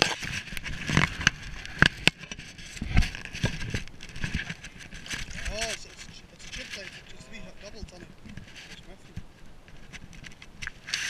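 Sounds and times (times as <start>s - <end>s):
rustling reeds: 0.0s - 11.0s.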